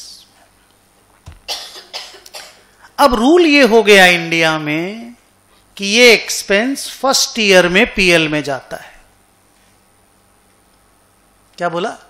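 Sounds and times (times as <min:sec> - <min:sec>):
person coughing: 0:01.4 - 0:02.7.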